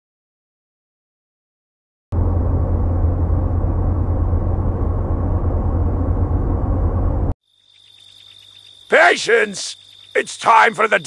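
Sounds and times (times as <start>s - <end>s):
loud low rumble: 2.1s - 7.4s
crickets chirping: 7.4s - 11.0s.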